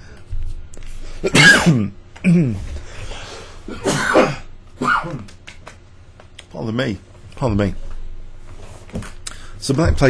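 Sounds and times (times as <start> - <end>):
man coughing: 1.2 - 2.8, 3.6 - 5.3
man clearing his throat: 1.3 - 2.7, 3.7 - 5.4.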